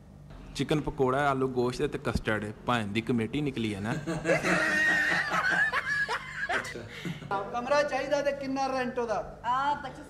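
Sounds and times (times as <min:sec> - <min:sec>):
people laughing: 0:03.9 - 0:07.3.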